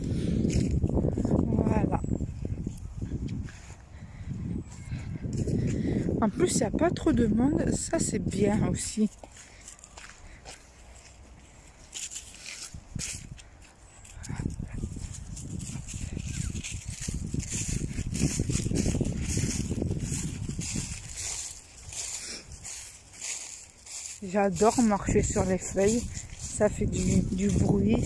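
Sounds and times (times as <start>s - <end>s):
footsteps in dry leaves: 0.0s - 28.0s.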